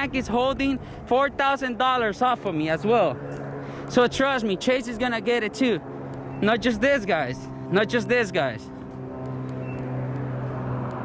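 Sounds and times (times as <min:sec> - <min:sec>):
engine humming: 0:00.0 - 0:11.0
outdoor background rush: 0:00.0 - 0:11.0.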